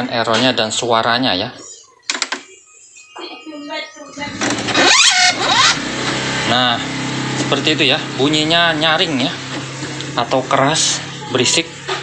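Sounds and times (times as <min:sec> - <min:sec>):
shrill rising pitch sweeps: 0:02.8 - 0:09.4
printer mechanical whir: 0:04.2 - 0:12.0.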